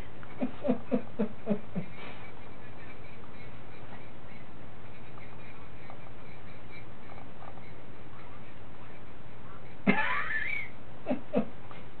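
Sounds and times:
background hiss: 0.0s - 12.0s
squeaks: 2.0s - 9.8s.

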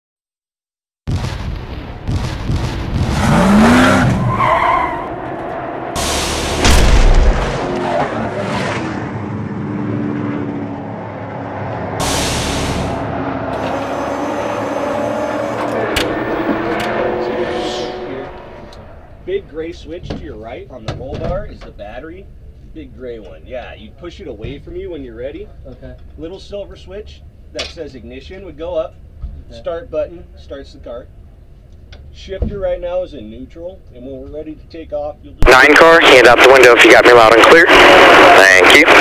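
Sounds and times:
deep boom: 1.1s - 4.3s, 6.0s - 7.7s
race car engine revving: 2.9s - 19.8s, 35.4s - 39.0s
tyres screeching: 3.2s - 6.6s
man speaking: 35.4s - 37.7s, 38.3s - 39.0s.

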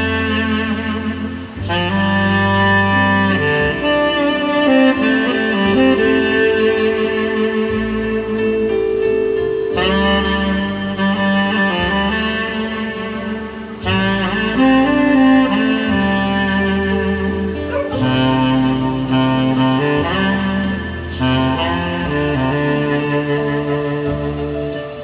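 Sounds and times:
bass line: 0.0s - 25.0s
saxophone melody: 0.0s - 25.0s.

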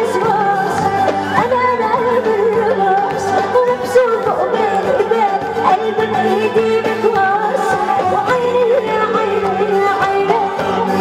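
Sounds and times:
keyboard and band accompaniment: 0.0s - 11.0s
woman singing ornamented melody: 0.0s - 11.0s.

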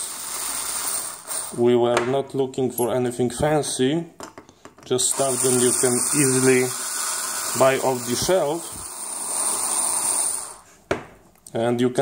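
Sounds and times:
electric screwdriver motor whine: 5.2s - 10.6s.

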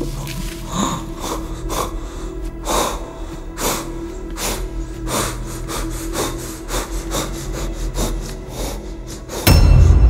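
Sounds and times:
low steady drone: 0.0s - 10.0s
man breathing hard and fast: 0.5s - 10.0s.

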